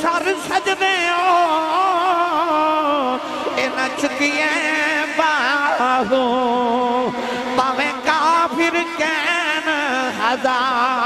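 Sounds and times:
man singing melismatic verse: 0.0s - 11.0s.

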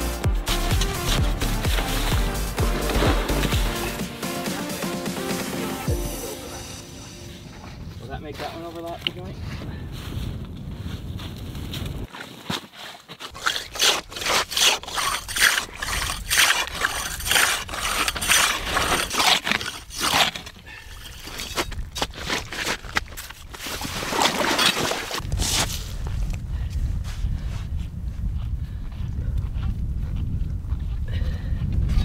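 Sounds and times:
ice saw rasping through ice: 0.5s - 4.0s, 12.1s - 25.8s.

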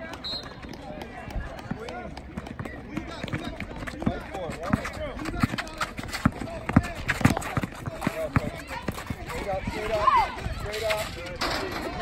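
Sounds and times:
footsteps running on asphalt: 0.0s - 10.6s
people shouting: 8.1s - 10.5s.

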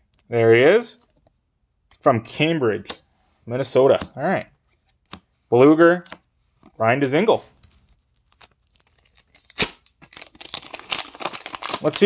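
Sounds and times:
wrapper crinkling and tearing: 7.7s - 12.0s.

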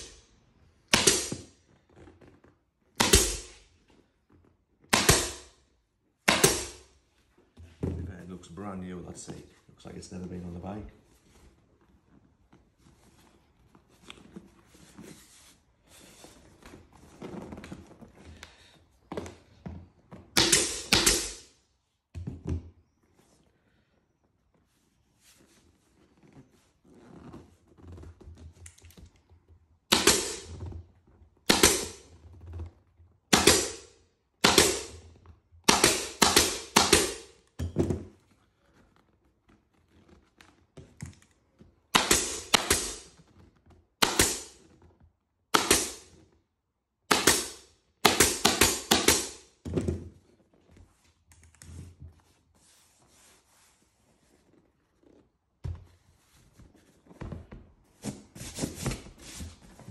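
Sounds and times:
air staple gun firing: 0.9s - 1.4s, 3.0s - 3.6s, 4.9s - 5.5s, 6.3s - 6.8s, 20.4s - 21.4s, 29.9s - 30.5s, 31.5s - 32.0s, 33.3s - 35.0s, 35.7s - 37.3s, 42.0s - 43.0s, 44.0s - 44.5s, 45.6s - 46.0s, 47.1s - 49.4s.

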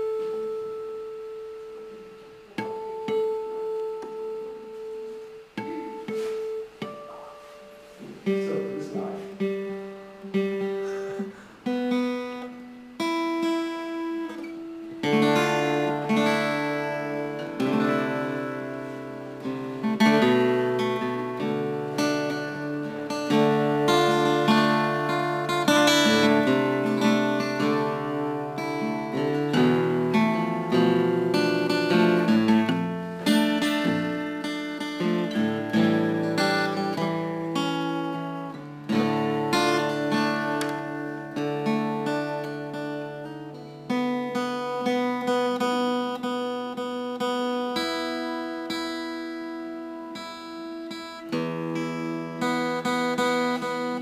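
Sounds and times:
acoustic guitar chords: 0.0s - 54.0s.

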